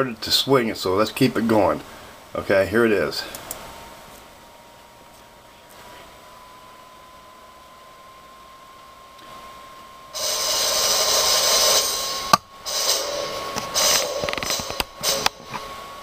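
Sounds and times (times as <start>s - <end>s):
faint steady tone: 3.1s - 16.0s
harsh noisy laptop audio: 9.2s - 16.0s.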